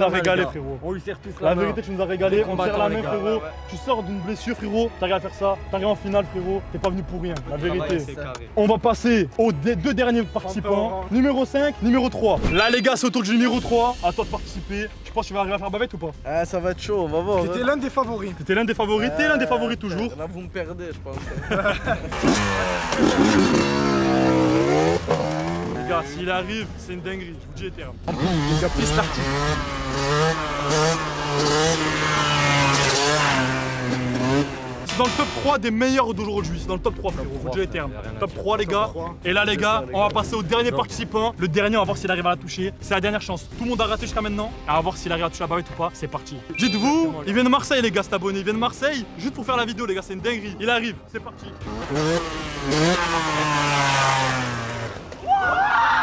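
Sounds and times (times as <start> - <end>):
two-stroke motorbike revving: 22.1 - 26.2, 28.1 - 35.4, 51.6 - 55.1.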